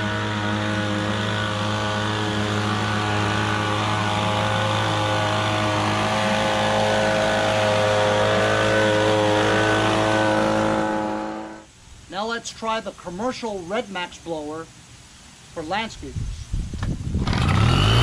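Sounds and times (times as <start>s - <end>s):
air rushing from blower tube: 0.0s - 11.7s
leaf blower running: 0.0s - 11.7s, 17.2s - 18.0s.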